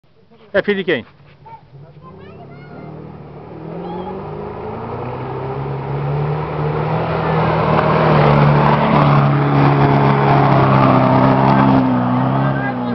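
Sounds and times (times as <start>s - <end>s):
engine running hard in mud: 1.8s - 12.9s.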